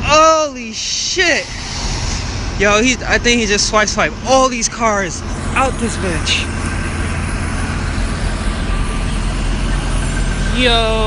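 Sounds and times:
city street traffic rumble: 0.0s - 11.0s
large vehicles idling: 0.0s - 11.0s.

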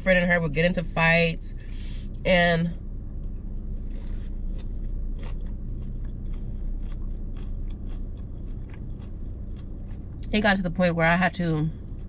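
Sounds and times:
low steady hum: 0.0s - 12.0s
person chewing food: 3.1s - 10.3s, 11.7s - 12.0s.

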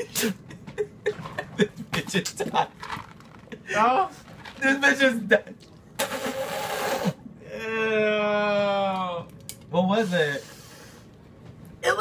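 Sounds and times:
laughter: 0.4s - 2.7s.

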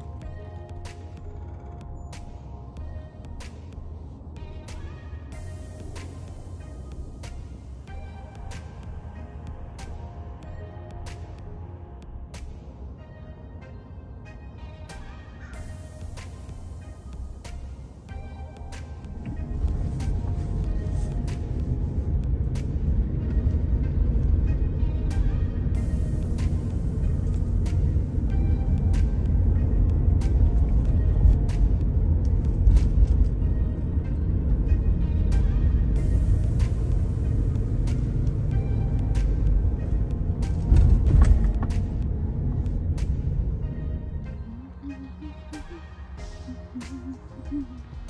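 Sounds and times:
background music: 0.0s - 48.0s
car driving rumble: 0.0s - 48.0s.

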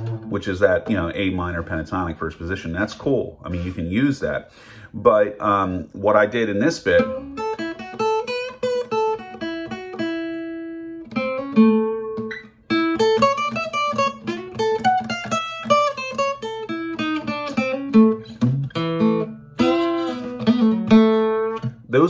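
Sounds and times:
acoustic guitar blues lick: 0.0s - 22.0s.

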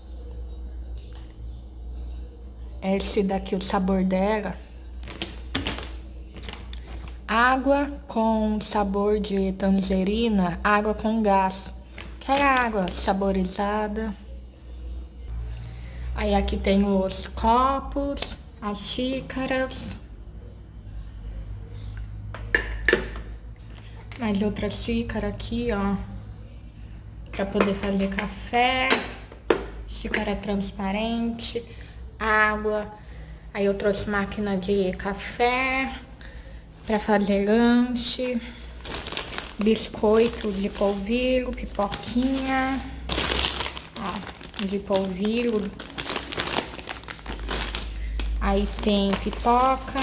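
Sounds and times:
glasses clinking: 22.4s - 24.4s, 27.4s - 29.5s
plastic packaging crinkling: 38.6s - 50.0s.

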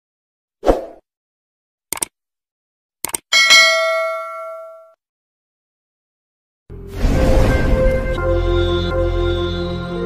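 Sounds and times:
bell-like notification ding: 3.4s - 5.0s.

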